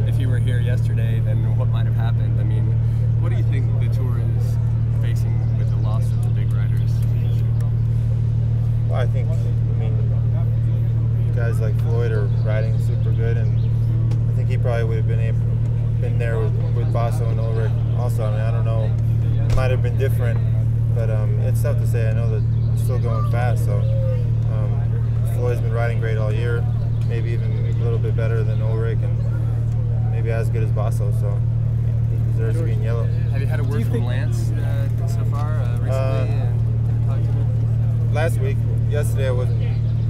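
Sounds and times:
people talking: 0.0s - 8.0s, 8.8s - 40.0s
low engine hum: 0.0s - 40.0s.

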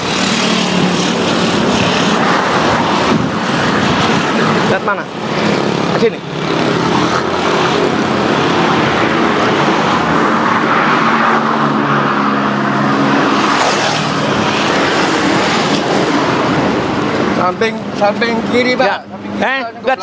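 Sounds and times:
road traffic noise: 0.0s - 20.0s.

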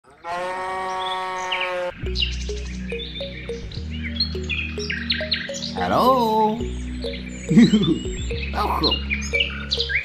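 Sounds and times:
farm animal call: 0.1s - 2.0s.

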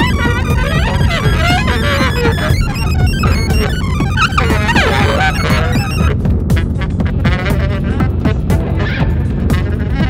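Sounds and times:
electronic music with electric guitar: 0.0s - 7.5s.

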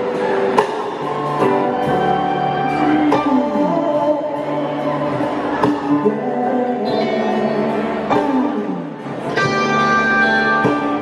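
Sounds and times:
electric guitar chords: 0.0s - 11.0s
live rock band: 0.0s - 11.0s.

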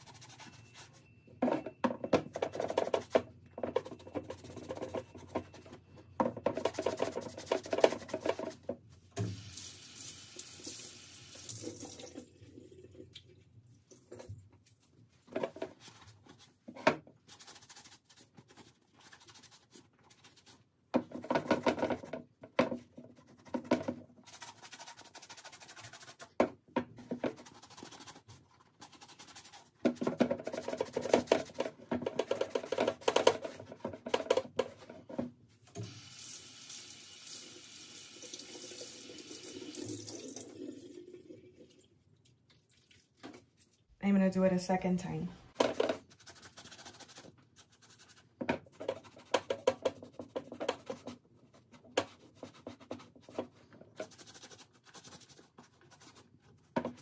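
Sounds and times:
water running from tap: 9.2s - 12.5s, 35.8s - 41.3s.

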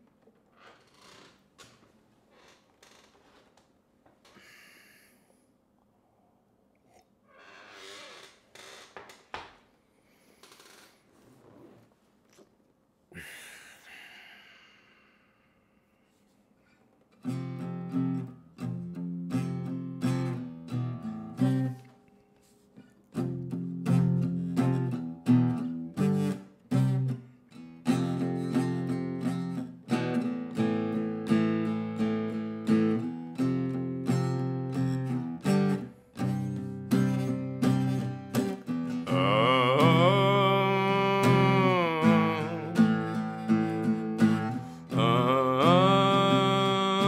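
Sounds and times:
soft breathy drinking noises: 6.7s - 7.2s
acoustic guitar strummed: 17.2s - 21.9s, 23.2s - 47.0s.

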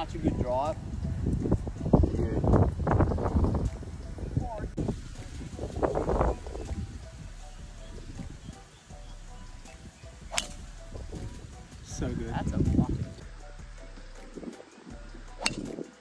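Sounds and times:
golf driver striking ball: 10.3s - 10.7s, 15.4s - 15.8s.

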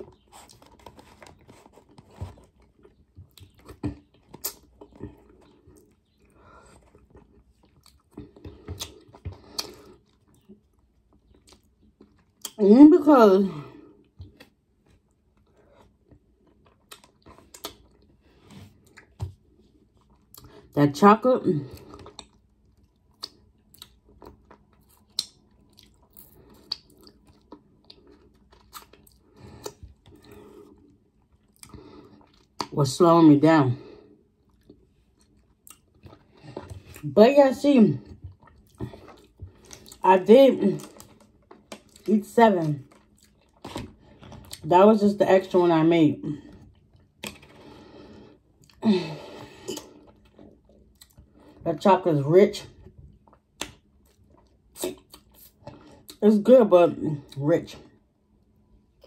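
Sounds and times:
person chewing: 0.0s - 12.6s, 13.8s - 20.8s, 21.7s - 32.8s, 33.9s - 37.1s, 38.0s - 40.0s, 40.6s - 42.1s, 42.7s - 44.6s, 46.4s - 51.6s, 52.9s - 56.2s
wet mouth clicks and smacks: 25.1s - 26.0s
wet mouth clicks: 54.8s - 55.5s.

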